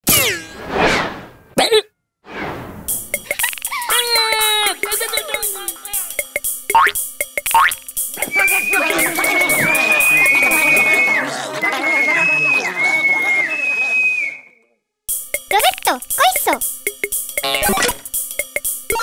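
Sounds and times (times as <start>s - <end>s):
clicking dance beat: 2.9s - 11.2s, 15.1s - 19.0s
chorus of cartoon creature voices: 3.7s - 6.4s
springy boing effects: 6.7s - 7.8s, 17.4s - 18.1s.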